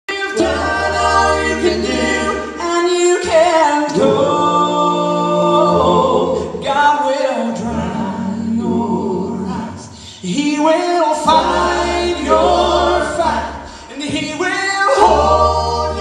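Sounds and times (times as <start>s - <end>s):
male gospel quartet singing: 0.1s - 16.0s.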